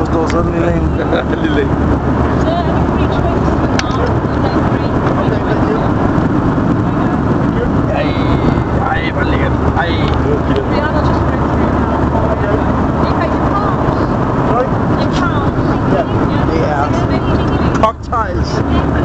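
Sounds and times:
airliner cabin roar: 0:00.0 - 0:19.0.

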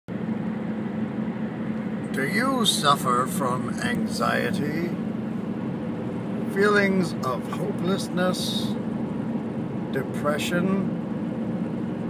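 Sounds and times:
car road and engine noise: 0:00.1 - 0:12.0
low hum: 0:00.1 - 0:12.0.

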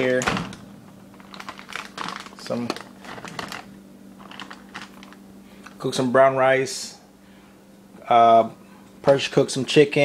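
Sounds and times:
plastic bag crinkling: 0:00.0 - 0:05.7
steady low hum: 0:00.0 - 0:10.0.

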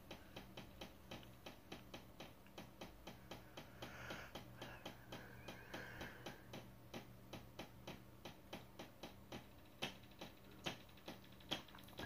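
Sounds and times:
faint regular ticking: 0:00.0 - 0:12.0
low steady hum: 0:00.0 - 0:12.0.

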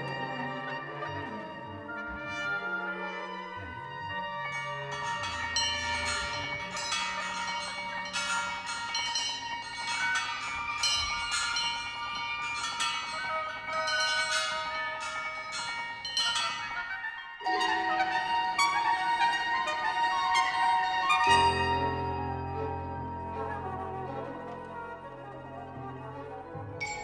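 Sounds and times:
bell-like metallic notes: 0:00.0 - 0:27.0
held brass and wind notes: 0:00.0 - 0:27.0.

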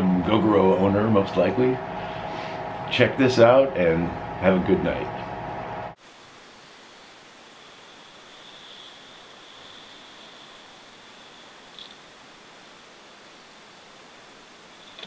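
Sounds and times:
faint high whine: 0:00.0 - 0:15.0
steady low hiss: 0:00.0 - 0:15.0.

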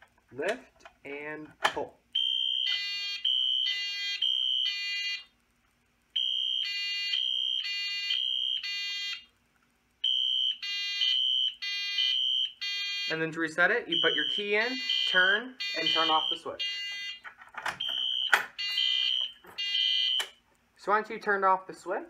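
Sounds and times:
fire alarm buzzy honk: 0:02.2 - 0:05.3, 0:06.1 - 0:09.3, 0:10.0 - 0:20.4
fire alarm high beep: 0:02.2 - 0:05.3, 0:06.2 - 0:09.3, 0:10.0 - 0:13.2, 0:13.9 - 0:17.2, 0:17.8 - 0:20.4.

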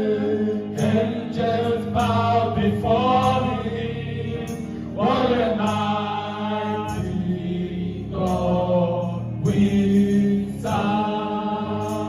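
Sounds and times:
low musical accompaniment: 0:00.0 - 0:12.0
women singing gospel song: 0:00.0 - 0:12.0.

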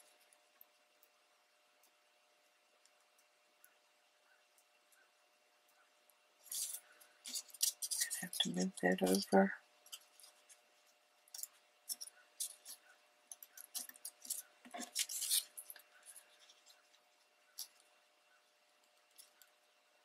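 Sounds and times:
paper rustling and crinkling: 0:06.5 - 0:10.7, 0:13.5 - 0:17.8.

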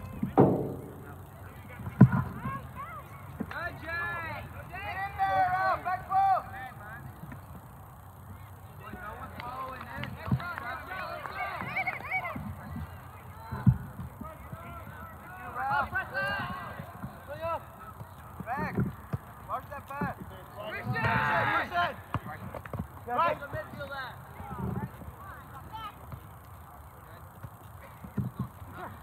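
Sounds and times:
sharp thud: 0:00.2 - 0:01.2
people shouting on a field: 0:02.2 - 0:07.0, 0:08.9 - 0:12.5, 0:13.3 - 0:18.8, 0:19.5 - 0:22.3.

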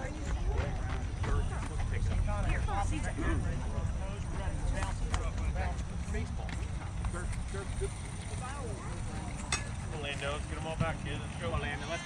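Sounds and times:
distant voices: 0:00.0 - 0:12.0.

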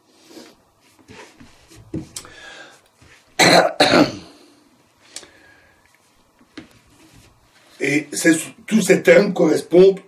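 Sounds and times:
man coughing: 0:03.4 - 0:04.4.

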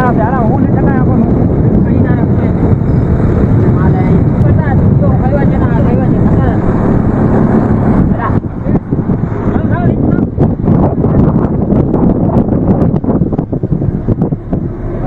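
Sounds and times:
boat engine low rumble: 0:00.0 - 0:15.0.

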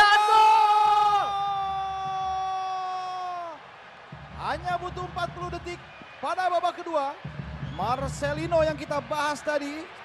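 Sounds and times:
stadium crowd noise: 0:00.0 - 0:10.0.

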